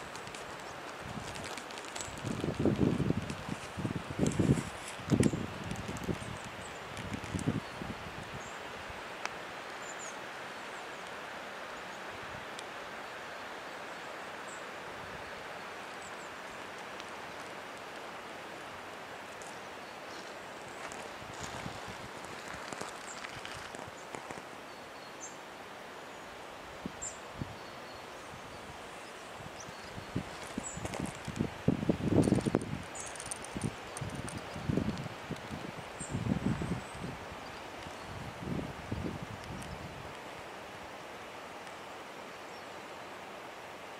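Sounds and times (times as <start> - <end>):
wind rushing through trees: 0.0 - 43.9
wind buffeting microphone: 0.9 - 8.4, 20.7 - 24.0, 29.4 - 40.2.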